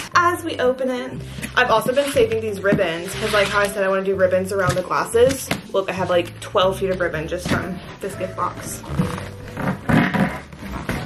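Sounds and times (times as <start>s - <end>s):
cardboard scraping and rustling: 1.4s - 3.8s, 8.7s - 11.0s.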